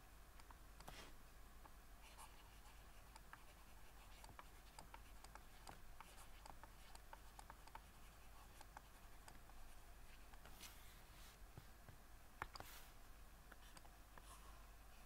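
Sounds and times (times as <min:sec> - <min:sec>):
stylus scratching on drawing tablet: 0:02.0 - 0:11.4.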